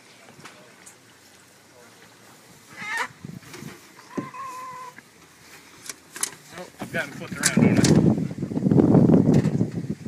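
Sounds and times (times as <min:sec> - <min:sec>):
chicken squawking: 0:02.7 - 0:03.2, 0:04.1 - 0:05.0.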